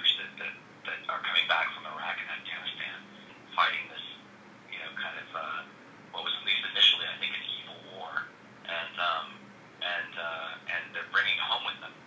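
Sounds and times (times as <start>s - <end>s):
person talking over telephone: 0.0s - 12.0s.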